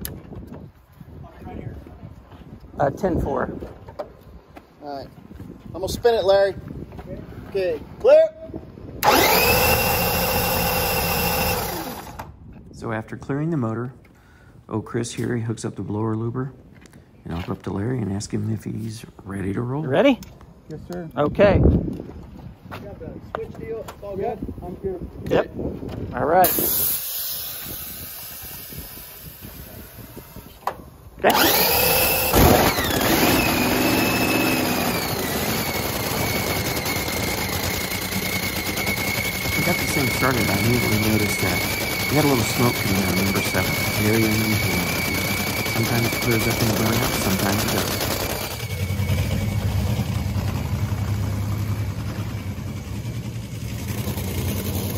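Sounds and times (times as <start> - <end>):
low outdoor rumble: 46.7 - 54.9.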